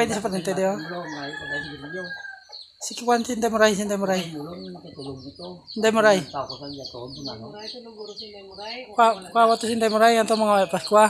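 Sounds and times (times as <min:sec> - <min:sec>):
rooster crowing: 0:00.6 - 0:02.6.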